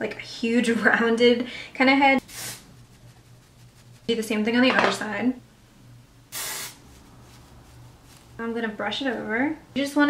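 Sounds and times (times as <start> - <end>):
aerosol spray hiss: 2.2 - 2.7, 6.3 - 6.8.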